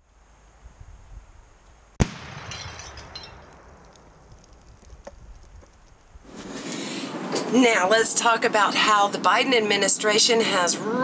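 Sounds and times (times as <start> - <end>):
gunshot: 2.0 - 3.8
ceramic pieces breaking: 2.5 - 3.6.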